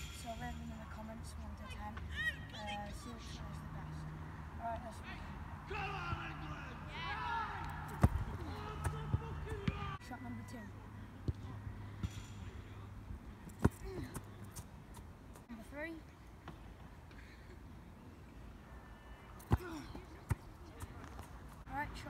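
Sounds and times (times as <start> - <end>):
football kicked on grass: 7.8 - 10.0, 19.4 - 21.3.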